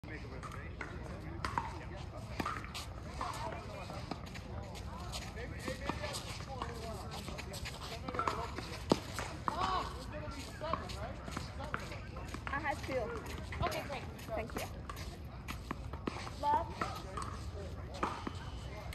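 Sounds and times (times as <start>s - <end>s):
ball bouncing on hard court: 0.8s - 1.8s
tennis ball struck by rackets: 1.4s - 3.6s.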